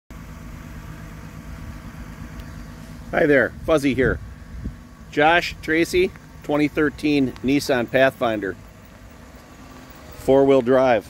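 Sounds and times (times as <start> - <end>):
car engine idling: 0.1 - 11.0.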